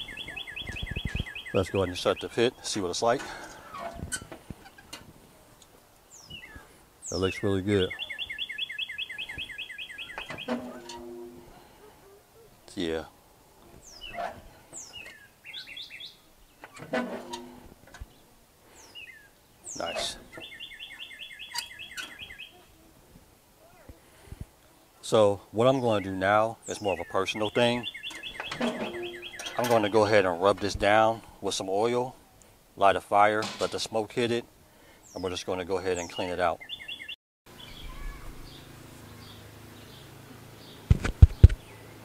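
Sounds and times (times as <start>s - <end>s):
songbird trilling: 0.0s - 2.4s, 6.1s - 11.3s, 13.8s - 16.8s, 18.8s - 22.7s, 25.8s - 30.3s, 36.0s - 40.0s
metal lid clanking shut: 10.3s - 11.5s, 16.8s - 17.6s, 28.2s - 29.9s, 33.4s - 33.8s
steel lid metallic clicks and knocks: 28.1s - 29.8s.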